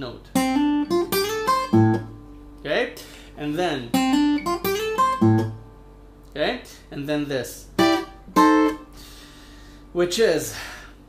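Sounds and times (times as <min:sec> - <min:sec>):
acoustic guitar chords: 0:00.3 - 0:06.1, 0:07.6 - 0:09.1.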